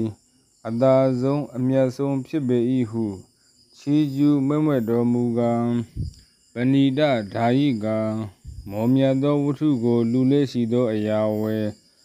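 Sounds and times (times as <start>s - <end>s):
man narrating: 0.0s - 3.2s, 3.8s - 6.0s, 6.6s - 11.8s.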